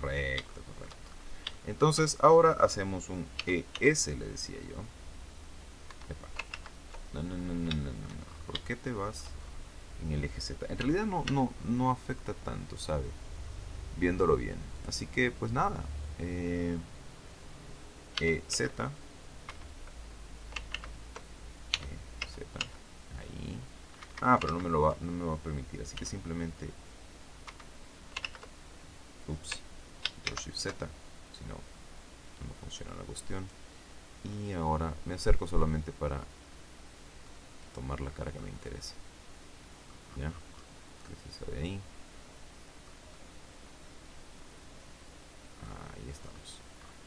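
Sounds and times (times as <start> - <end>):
low steady hum: 0.0 - 47.0
keyboard key clicks: 5.9 - 6.8, 20.5 - 22.8, 27.5 - 28.5.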